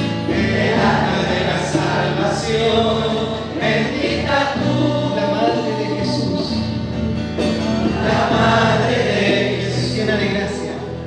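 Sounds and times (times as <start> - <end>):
acoustic guitar: 0.0 - 11.0
man singing a hymn: 0.3 - 6.8, 7.9 - 11.0.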